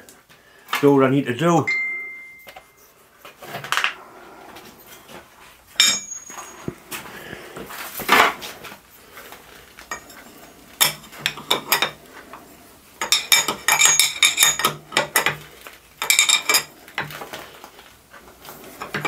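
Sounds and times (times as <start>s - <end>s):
ringing metal clinks: 5.8s - 6.7s
steel clinks and rattles: 5.8s - 6.7s, 9.9s - 10.2s, 13.0s - 15.4s, 16.0s - 16.7s.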